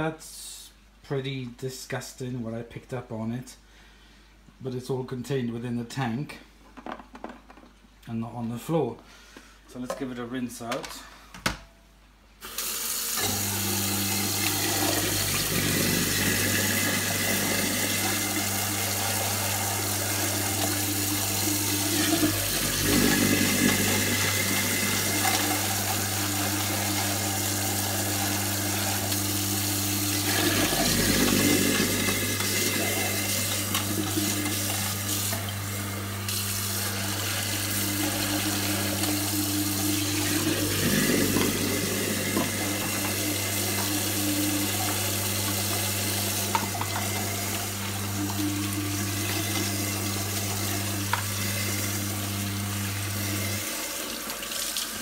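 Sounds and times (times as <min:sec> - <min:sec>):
tap water splashing into tank: 0:46.5 - 0:47.2.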